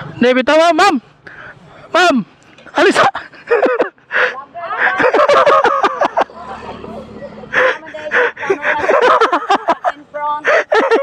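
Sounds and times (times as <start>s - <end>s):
woman laughing: 3.0s - 11.0s.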